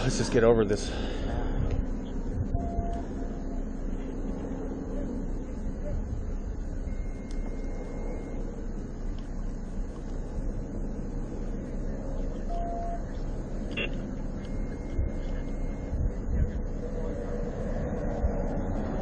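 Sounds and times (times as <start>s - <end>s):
car engine low rumble: 0.0s - 19.0s
short beep: 2.5s - 3.1s, 6.8s - 8.5s, 12.5s - 13.1s, 13.7s - 15.9s.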